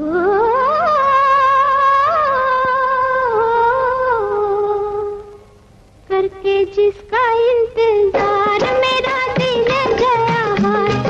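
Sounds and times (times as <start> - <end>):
woman singing wordless vocalise: 6.1 - 11.0.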